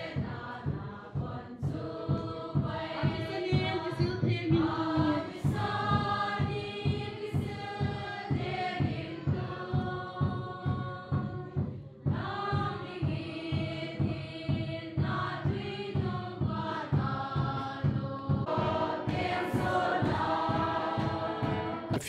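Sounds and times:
choir singing a hymn: 0.0s - 22.0s
steady beat: 0.0s - 22.0s.

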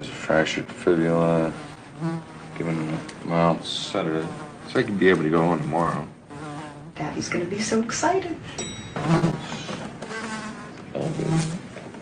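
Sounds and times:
fly buzzing: 0.9s - 7.7s, 9.0s - 11.7s.

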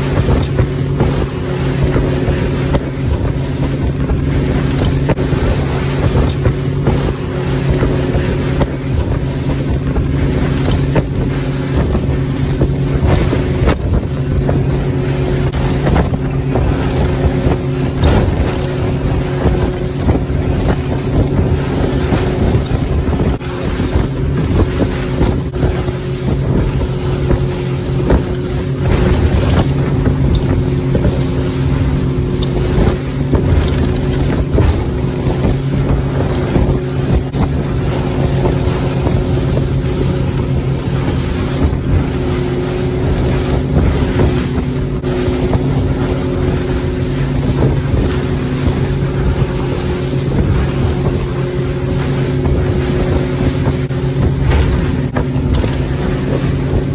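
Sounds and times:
motorboat engine drone: 0.0s - 56.9s
water rushing along hull: 0.0s - 56.9s
wind buffeting microphone: 0.0s - 56.9s.

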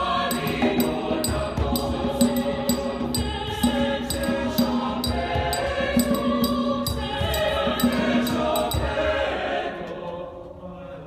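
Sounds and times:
sharp rhythmic percussion hits: 0.0s - 9.3s
mixed choir singing: 0.0s - 11.0s.

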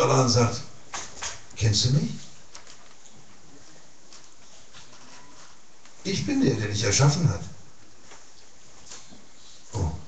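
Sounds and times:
room hiss: 0.0s - 10.0s.

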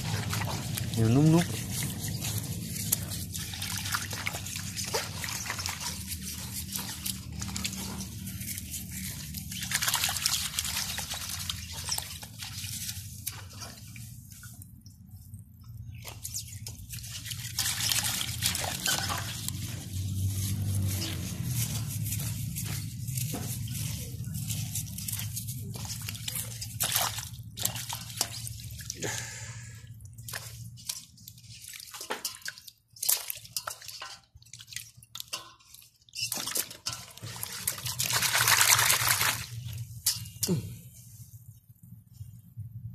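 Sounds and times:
water splashing in steel bowl: 0.0s - 14.6s, 15.9s - 40.7s.

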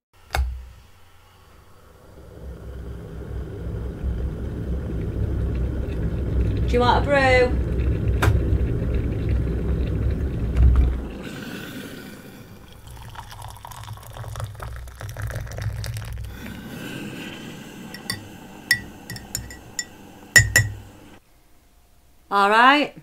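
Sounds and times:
low rumble: 1.1s - 13.0s
water pouring into mug: 7.5s - 20.9s
spoon clinking against mug: 18.0s - 20.8s.

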